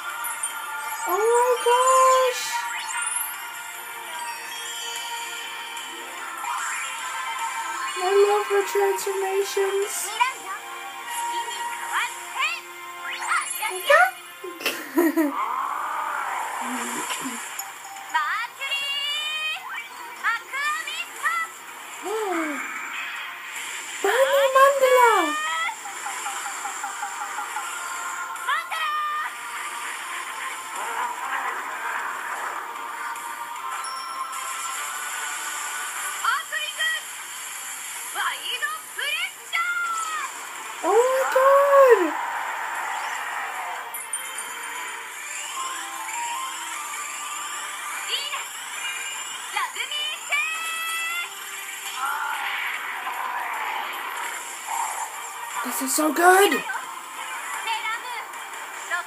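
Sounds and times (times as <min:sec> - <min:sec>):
high voice falling in pitch: 0:40.8 - 0:42.1.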